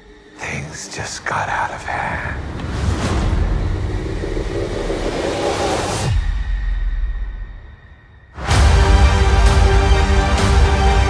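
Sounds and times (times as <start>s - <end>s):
dense low rumble: 1.5s - 7.4s.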